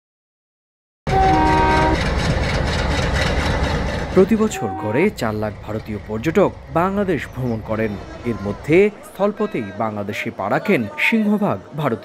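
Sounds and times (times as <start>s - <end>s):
locomotive horn chord: 1.1s - 2.1s, 4.2s - 5.4s
train rumbling on rails: 1.1s - 9.8s.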